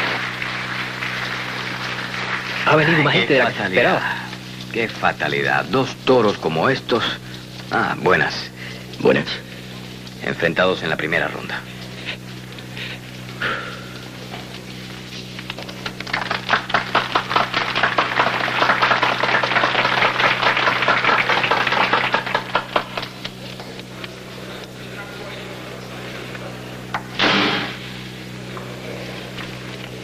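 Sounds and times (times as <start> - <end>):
steady low hum: 0.0 - 30.0
loud burst of noise: 27.1 - 28.3.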